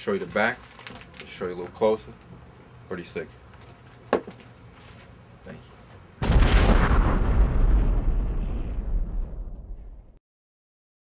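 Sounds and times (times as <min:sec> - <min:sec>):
deep rumbling explosion boom: 0:06.2 - 0:10.2.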